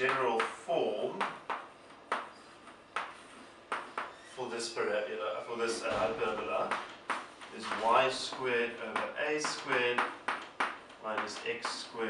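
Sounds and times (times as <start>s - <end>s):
chalk tapping on blackboard: 1.2s - 4.2s, 6.4s - 12.0s.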